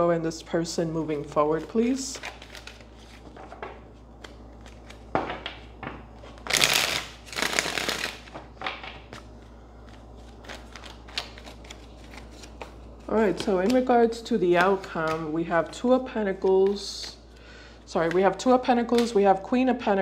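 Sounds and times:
cards being shuffled by hand: 1.2s - 15.8s, 16.4s - 17.2s.

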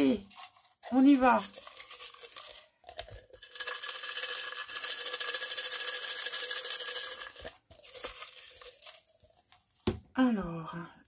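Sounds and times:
paper slips rattling in plastic cup: 0.0s - 9.7s
handling sounds: 7.3s - 10.1s.

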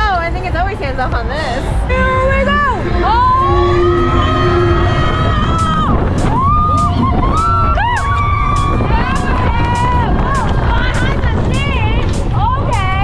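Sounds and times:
roller coaster train rumbling: 0.0s - 13.0s
wind buffeting microphone: 0.0s - 13.0s
person screaming: 2.8s - 5.6s.

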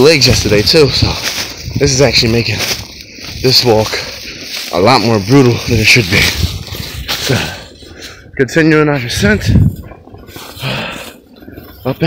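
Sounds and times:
man breathing out heavily: 6.7s - 8.4s, 10.3s - 11.8s.

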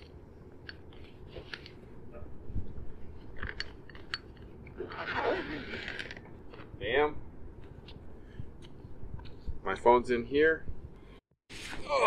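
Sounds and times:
zipper and frame clicks: 4.8s - 6.2s
zipper rasping: 4.8s - 6.2s.

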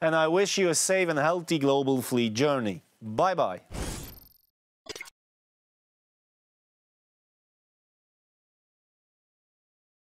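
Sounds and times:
man speaking: 0.0s - 3.7s.

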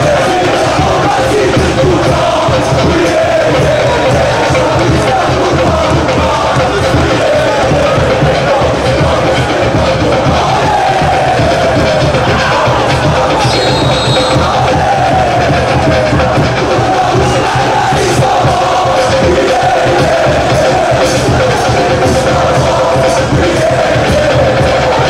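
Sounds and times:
stadium crowd chanting: 0.0s - 25.0s.

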